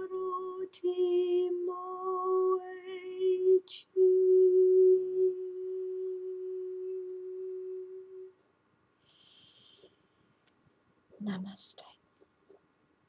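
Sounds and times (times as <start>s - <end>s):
woman singing long note: 0.0s - 8.3s
faint hiss: 0.0s - 13.0s.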